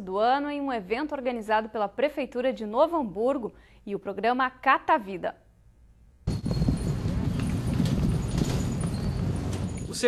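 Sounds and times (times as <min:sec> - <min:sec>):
knocks and clatter: 0:06.3 - 0:10.0
outdoor street noise: 0:06.3 - 0:10.0.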